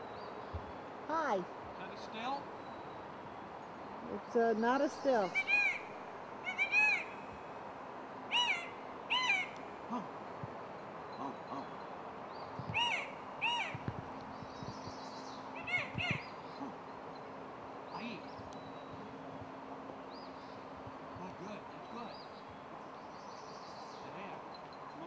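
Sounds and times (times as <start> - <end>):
bird calling: 1.1 - 7.5, 8.3 - 10.2, 11.1 - 17.1.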